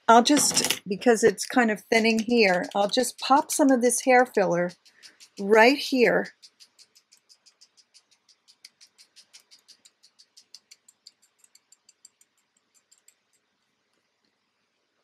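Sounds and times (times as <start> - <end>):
shaker bottle tapping on scalp: 1.5 - 13.5.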